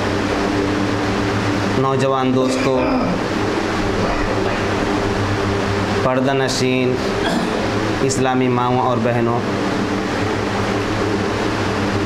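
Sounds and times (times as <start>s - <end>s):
machine hum with hiss: 0.0s - 12.0s.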